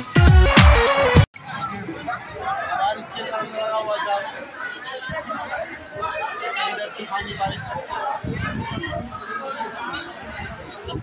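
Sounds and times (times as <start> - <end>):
crowd chatter: 0.0 - 11.0.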